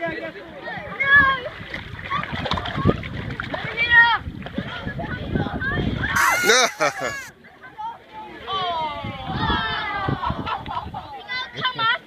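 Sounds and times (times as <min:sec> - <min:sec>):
children chattering excitedly: 0:04.6 - 0:08.5, 0:09.2 - 0:12.0.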